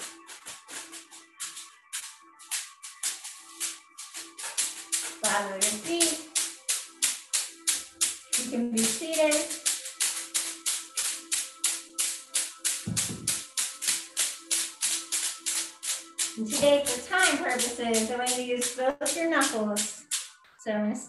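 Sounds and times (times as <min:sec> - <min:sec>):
hand patting on leg: 0:12.8 - 0:13.4.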